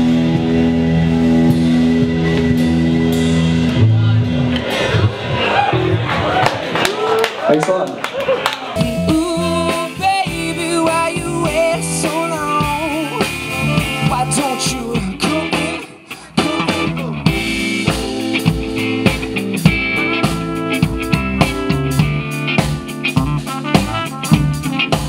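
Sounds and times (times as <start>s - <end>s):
drum kit: 0.0s - 6.8s, 8.5s - 25.0s
electric guitar: 0.0s - 6.9s, 8.2s - 25.0s
live band playing: 0.0s - 7.5s, 8.2s - 25.0s
trumpet: 13.2s - 15.8s, 20.0s - 25.0s.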